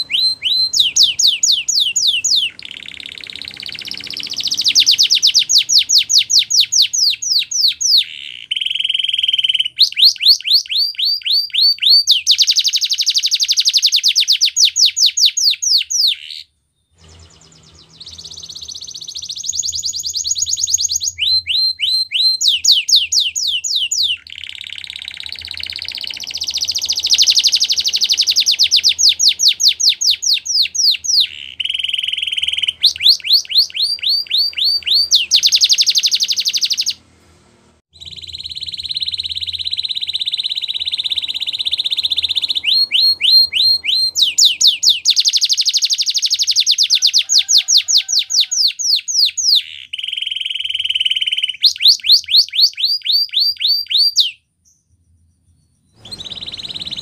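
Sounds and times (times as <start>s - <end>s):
canary singing trills: 0.0s - 37.0s, 37.9s - 57.0s.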